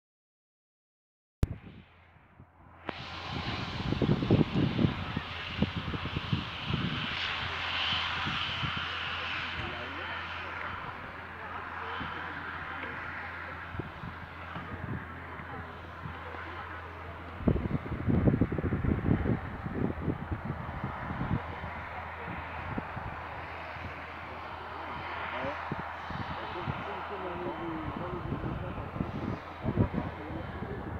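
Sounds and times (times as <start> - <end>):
outdoor background: 1.4 - 30.9
wind buffeting microphone: 1.4 - 30.9.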